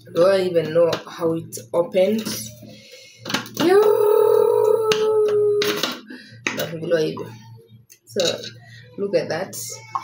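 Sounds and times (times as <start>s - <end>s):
person voicing ooh: 3.6s - 5.8s.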